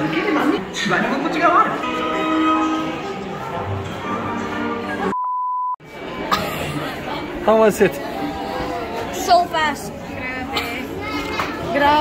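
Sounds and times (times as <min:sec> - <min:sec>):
background music: 0:00.0 - 0:05.2
crowd noise: 0:00.0 - 0:12.0
steady beep tone: 0:05.1 - 0:05.8.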